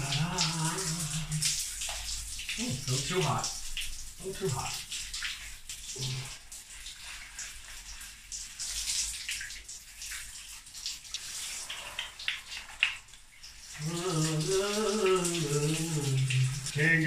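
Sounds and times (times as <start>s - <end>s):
hands scrubbing wet hair: 0.0s - 17.0s
shower water splashing: 0.0s - 17.0s.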